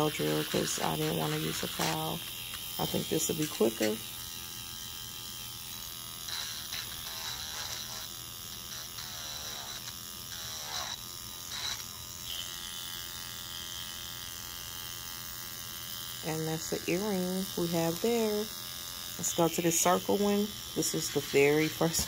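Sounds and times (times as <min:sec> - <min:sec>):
electric nail drill whining: 0:00.0 - 0:22.0.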